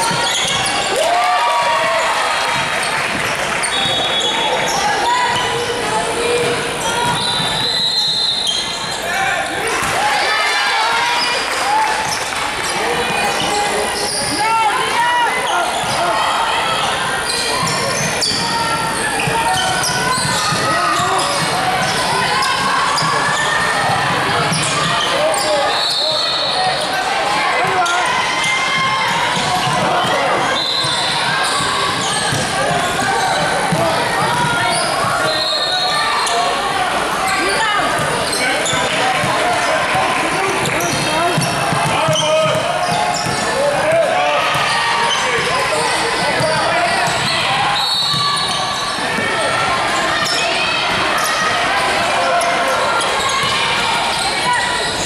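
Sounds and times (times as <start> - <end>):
echoing crowd voices: 0.0 - 55.0.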